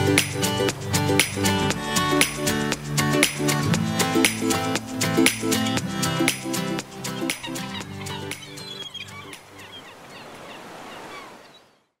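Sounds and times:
ocean waves breaking: 0.0s - 11.8s.

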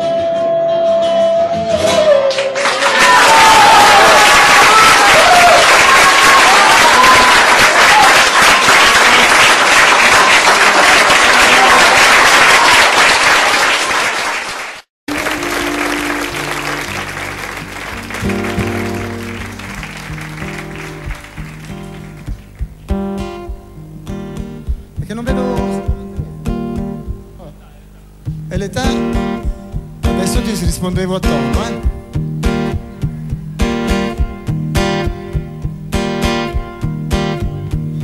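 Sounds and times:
acoustic guitar notes: 0.0s - 2.6s, 15.1s - 38.0s
audience applauding and cheering: 1.7s - 22.9s.

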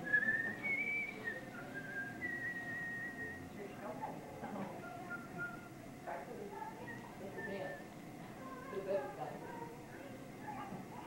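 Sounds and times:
whistling high notes: 0.0s - 3.4s.

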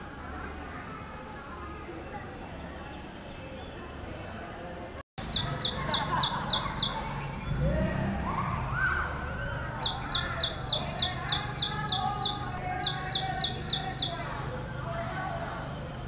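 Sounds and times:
bird singing repetitive high notes: 5.2s - 7.2s, 9.7s - 14.5s.

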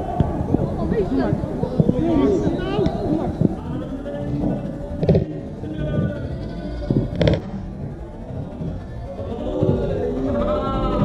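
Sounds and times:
players calling out: 0.0s - 11.0s
steady low rumble: 0.0s - 11.0s.

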